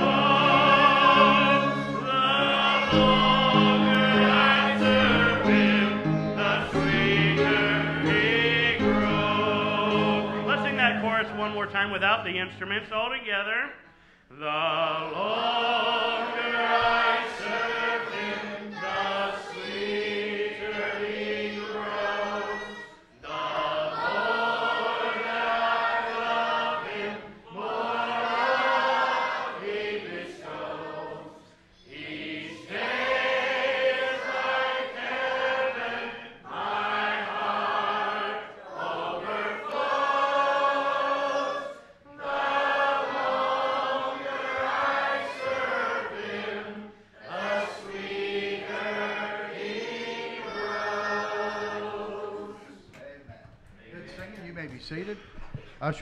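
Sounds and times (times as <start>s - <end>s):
congregation singing a hymn: 0.0s - 13.4s, 14.3s - 53.1s.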